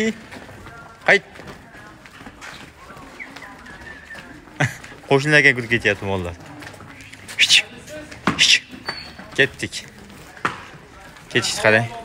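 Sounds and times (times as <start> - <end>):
cattle hooves clopping on pavement: 0.0 - 12.0.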